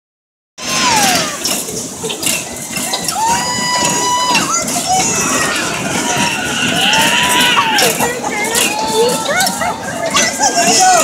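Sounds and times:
children shrieking and shouting: 0.6 - 1.7, 2.7 - 11.0
fairground din: 0.6 - 11.0
high held scream: 3.1 - 8.0.

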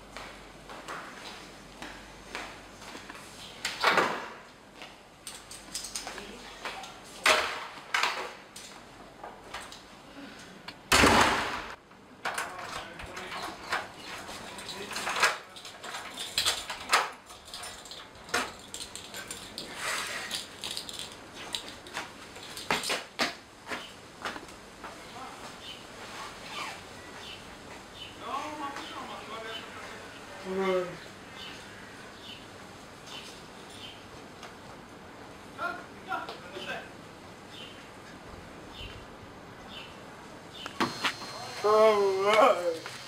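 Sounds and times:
rustle: 13.2 - 28.9.

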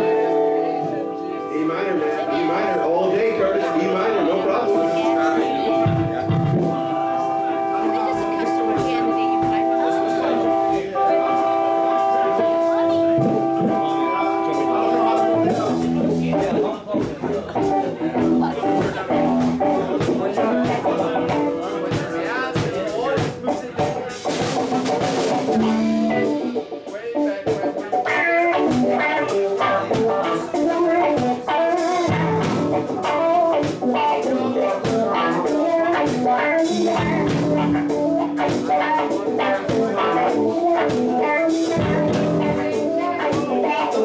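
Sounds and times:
electric guitars: 0.0 - 44.0
drum kit: 2.1 - 44.0
electric bass: 3.1 - 22.6, 23.2 - 26.9, 28.0 - 44.0.

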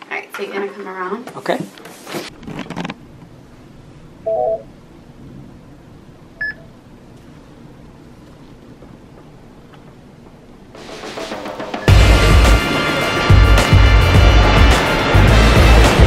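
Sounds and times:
low room hum: 0.0 - 10.8.

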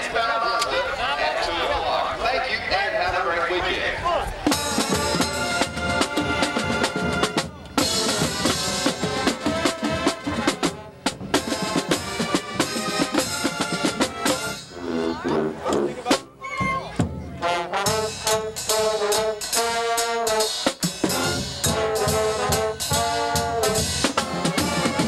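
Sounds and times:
people talking: 0.0 - 5.2, 14.8 - 17.6
marching band playing: 4.4 - 25.0.

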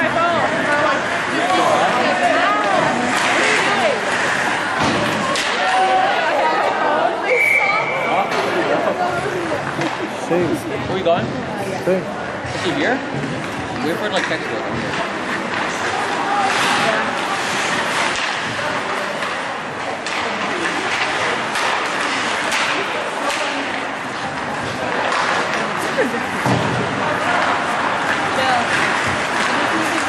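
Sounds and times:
hockey sticks and puck knocking: 0.0 - 6.0, 12.5 - 30.0
skates on ice: 0.0 - 6.8, 12.5 - 30.0
spectators chattering: 0.0 - 30.0
thuds against rink boards: 4.7 - 5.7, 26.4 - 27.0.

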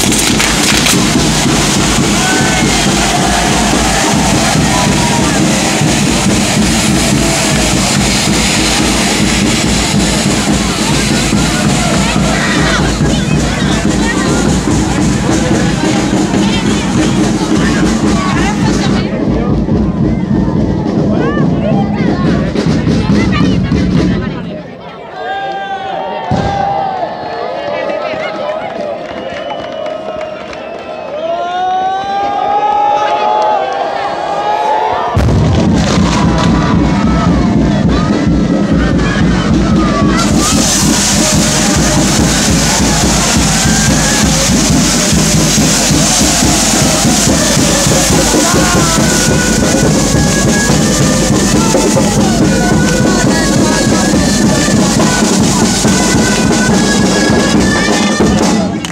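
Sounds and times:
hiss of spark sprays: 0.0 - 12.6, 40.1 - 57.6
crowd shouting and whistling: 0.0 - 22.3, 24.4 - 58.9
fireworks crackling: 0.0 - 24.2, 35.1 - 58.9
music: 0.0 - 24.6, 35.2 - 58.9.

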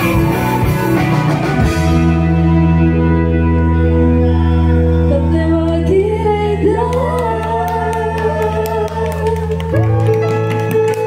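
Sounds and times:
pop-rock band playing: 0.0 - 11.0
person singing: 4.3 - 11.0.

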